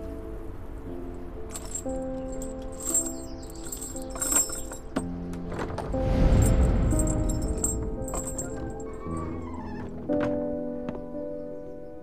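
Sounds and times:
background music with held tones: 0.0 - 12.0
metal chain clinking: 1.5 - 5.1, 6.3 - 9.4
heavy low rush of doors opening: 4.4 - 10.7.

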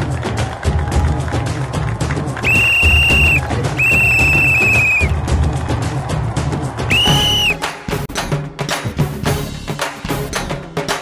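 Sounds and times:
background music with steady beat: 0.0 - 11.0
referee's whistle blasts: 2.4 - 5.1, 6.9 - 7.6.

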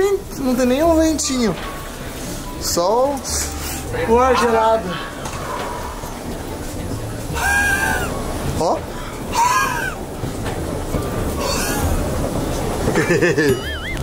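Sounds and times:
luggage clatter and rumble: 0.0 - 14.0.

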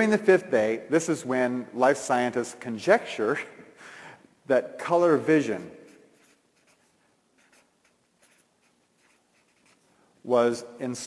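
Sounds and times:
marker pen scratching on paper: 5.5 - 10.0.

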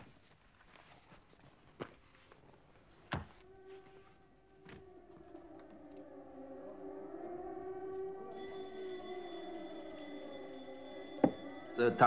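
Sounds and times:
distant air-raid sirens wailing: 3.2 - 12.0
thin high steady whine: 6.7 - 12.0.

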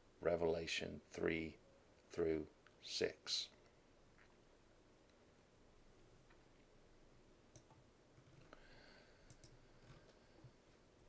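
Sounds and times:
faint clicks: 9.2 - 10.2.

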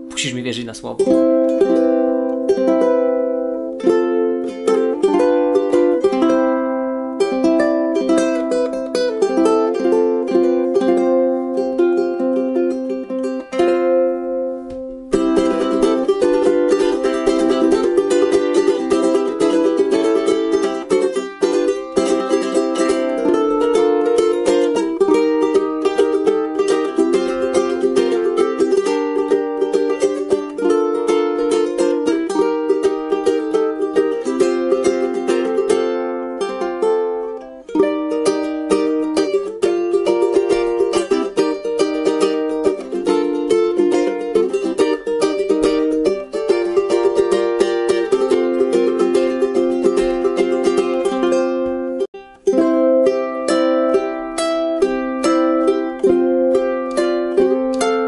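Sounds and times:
ukulele played fingerstyle: 0.0 - 58.0.

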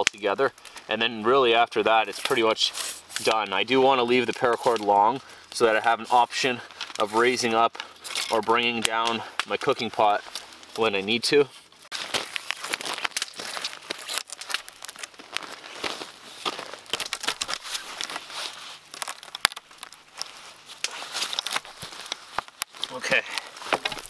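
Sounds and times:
crackles and sharp clicks: 0.0 - 0.9, 1.6 - 5.9, 6.5 - 24.0
cord rustling and crinkling: 0.0 - 24.0.

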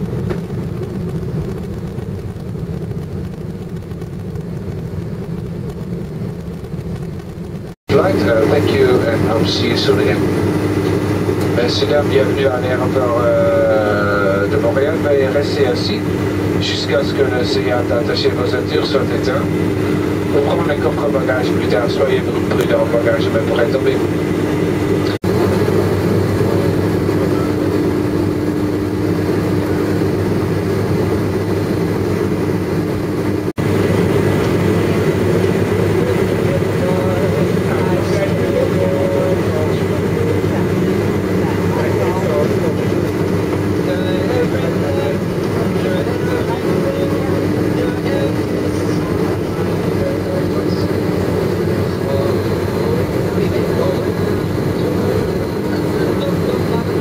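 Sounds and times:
airliner cabin engine drone: 0.0 - 57.0.

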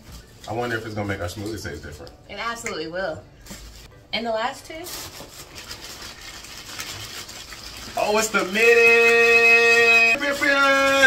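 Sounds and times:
plastic bag rustling and crinkling: 0.0 - 2.2, 3.4 - 3.9, 4.7 - 11.0
plastic bag tearing: 4.7 - 11.0.

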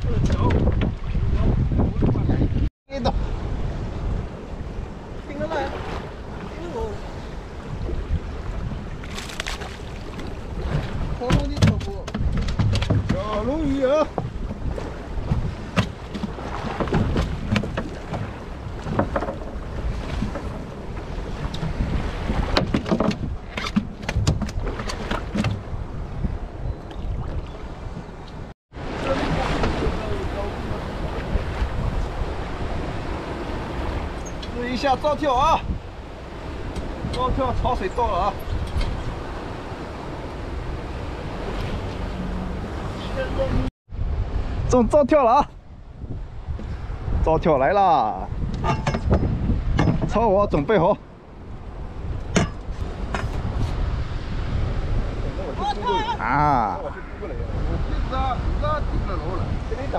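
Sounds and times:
wind buffeting microphone: 0.0 - 59.9
water washing against boat: 3.4 - 59.9.

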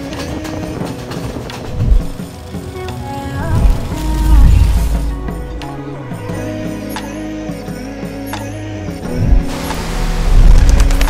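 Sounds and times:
music: 0.0 - 11.0
deep low thump: 1.7 - 2.2, 3.4 - 6.6.

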